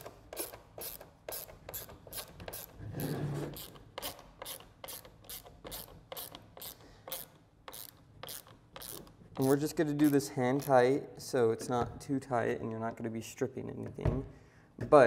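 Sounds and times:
ratcheting screwdriver clicking: 3.5 - 10.8.

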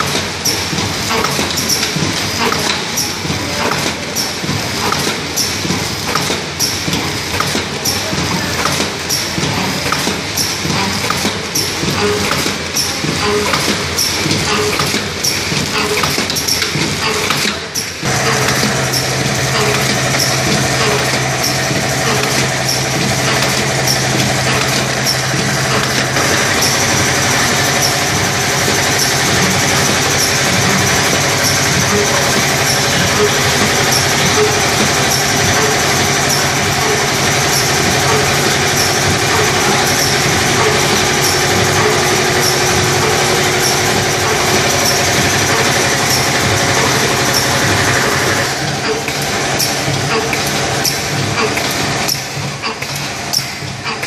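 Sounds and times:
packing machine rattling: 0.0 - 54.0
low machine hum: 18.0 - 53.8.

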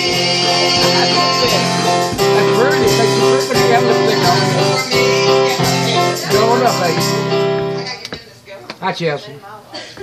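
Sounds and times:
person singing: 0.0 - 7.3
country gospel guitar and keyboard: 0.0 - 8.0.

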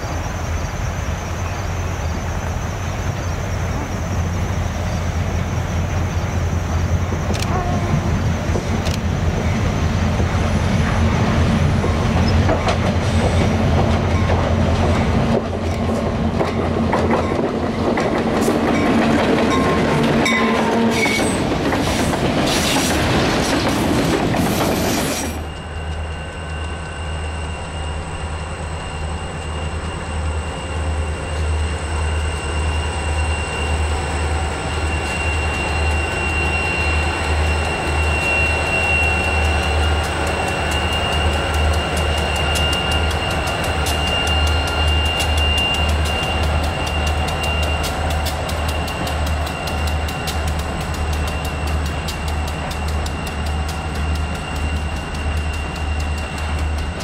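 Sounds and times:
diesel locomotive throbbing: 0.0 - 57.0
freight train rolling past: 0.0 - 57.0
wheels clicking over rail joints: 11.8 - 26.9, 39.2 - 57.0
wheel squeal: 19.5 - 23.3, 24.4 - 57.0.

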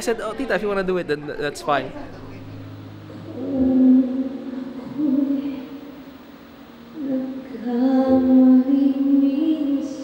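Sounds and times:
woman singing a slow ballad: 3.1 - 6.2, 6.9 - 10.0.

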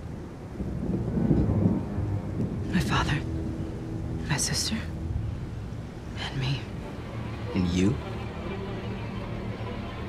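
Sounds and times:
rain: 0.0 - 10.0
thunder rumbling: 0.0 - 10.0.

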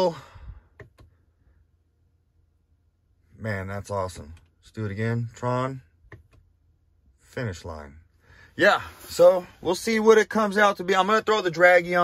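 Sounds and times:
car control clicks: 0.8 - 1.1, 6.0 - 6.5.

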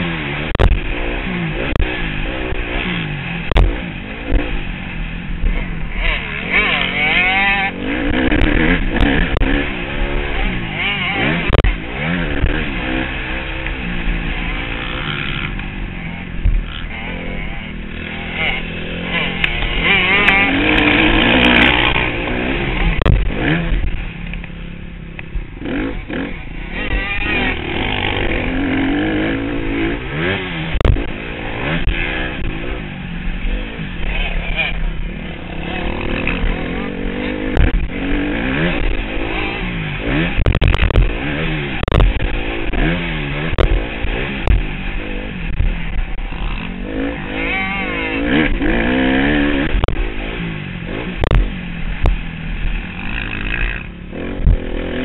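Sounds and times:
dirt bike engine revving: 0.0 - 55.0
knocks from bumps and landings: 23.0 - 23.9, 40.4 - 41.2.

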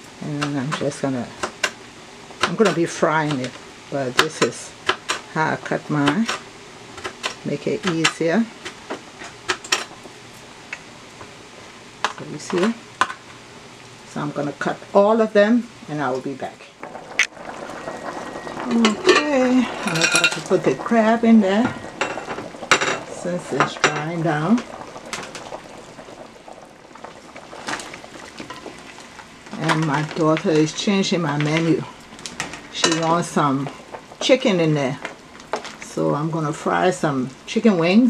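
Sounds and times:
sauce bubbling in metal pot: 6.4 - 37.6.

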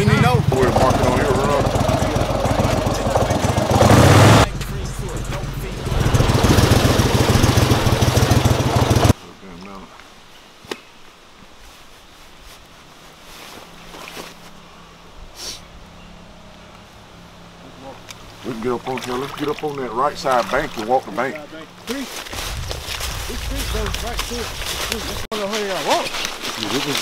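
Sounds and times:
outboard motor running: 0.0 - 9.1
quiet outdoor background: 0.0 - 27.0.

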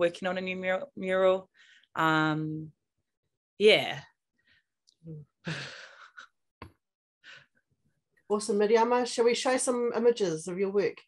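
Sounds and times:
breathy laughing sigh: 5.4 - 6.3.

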